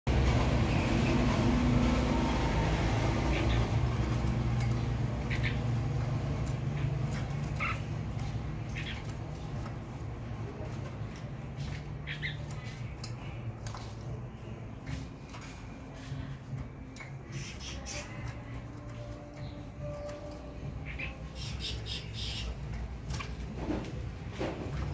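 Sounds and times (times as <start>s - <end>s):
bird chirping: 3.2s - 9.9s, 11.4s - 23.4s.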